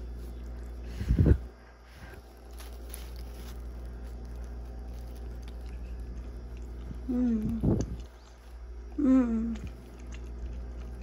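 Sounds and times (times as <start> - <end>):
faint chewing with crackles: 0.0 - 11.0
low steady hum: 0.0 - 11.0.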